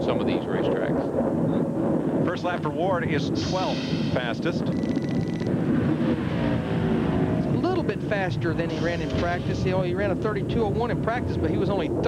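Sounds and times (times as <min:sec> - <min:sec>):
race car engine at speed: 0:03.1 - 0:12.0.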